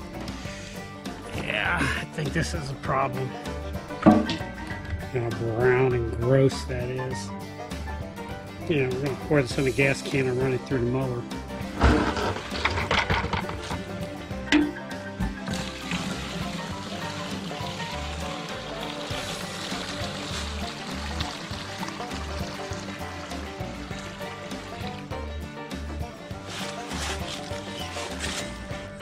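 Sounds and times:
music with bass beat: 13.3s - 17.0s
liquid pouring into plastic bucket: 15.3s - 25.2s.

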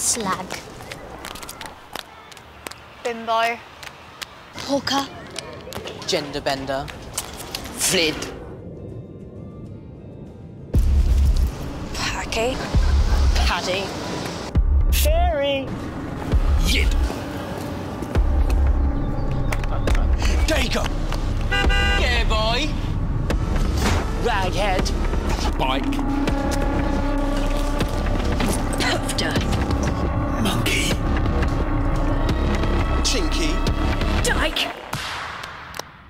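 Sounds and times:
street traffic rumble: 0.0s - 9.0s, 10.7s - 34.6s.

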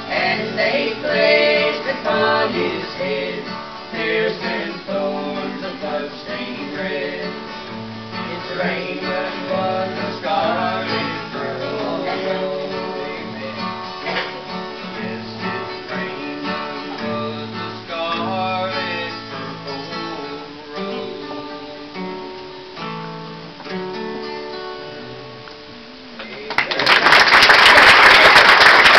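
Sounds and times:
voices singing: 0.0s - 22.4s
acoustic guitar playing: 0.0s - 26.3s
audience applause: 26.4s - 28.9s.

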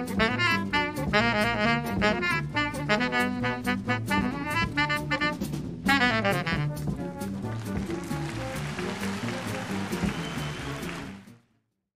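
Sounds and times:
baritone saxophone: 0.0s - 11.2s
cool jazz combo: 0.0s - 11.3s.

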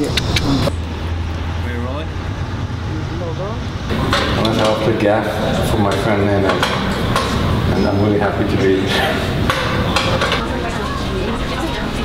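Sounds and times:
metallic clicks and knocks: 5.9s - 7.5s.

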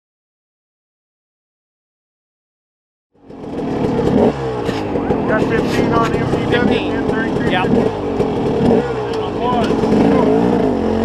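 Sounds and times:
dirt bike engine: 3.2s - 11.0s.

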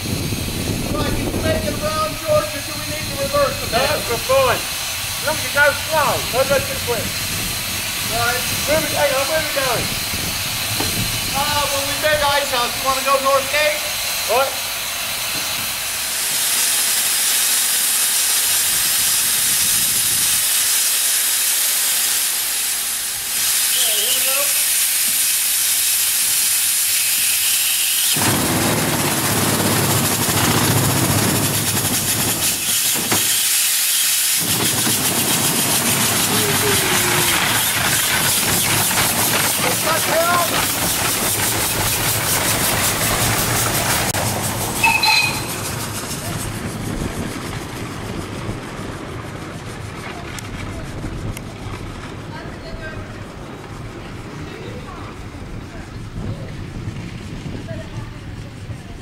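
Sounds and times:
steam engine hissing: 0.0s - 59.0s.

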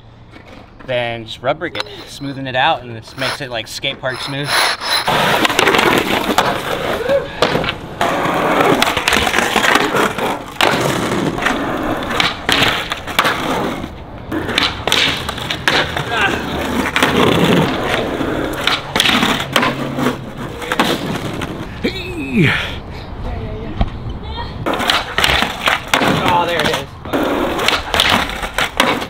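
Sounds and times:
skateboard wheels rolling on concrete: 0.0s - 29.0s
skateboard sliding on ledge: 1.8s - 21.8s, 24.6s - 29.0s
skateboard clacks: 4.5s - 21.7s, 24.6s - 29.0s.

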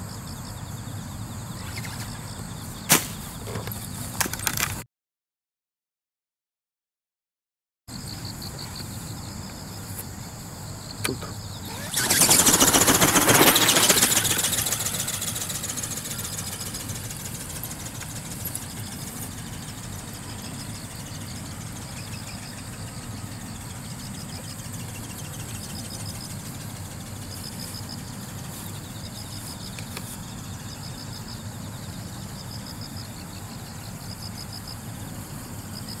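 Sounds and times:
robot bird motor buzzing whir: 11.5s - 31.3s
flapping wings: 11.6s - 22.6s.

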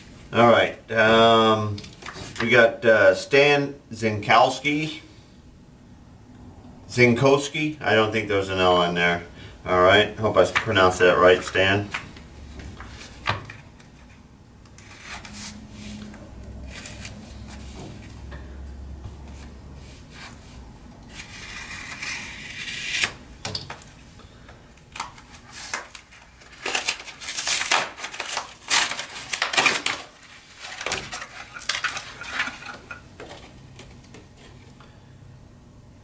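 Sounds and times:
cardboard tearing: 25.0s - 32.8s
paper packaging crinkling: 25.0s - 34.6s.

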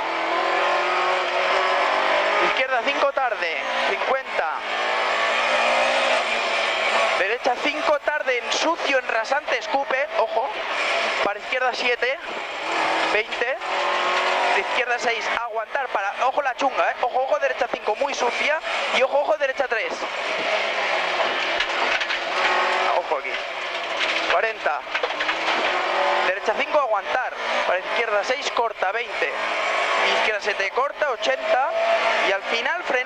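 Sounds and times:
car engine running hard: 0.0s - 33.0s.

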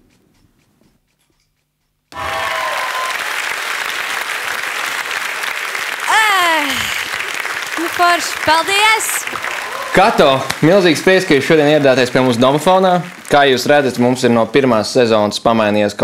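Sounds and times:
applause and cheering: 2.1s - 14.9s
falling whoop: 2.2s - 3.4s, 9.5s - 10.0s.

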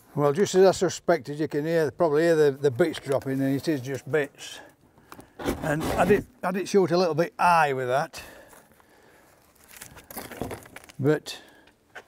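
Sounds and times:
cardboard crinkling and scraping: 5.2s - 6.4s, 9.4s - 11.1s.

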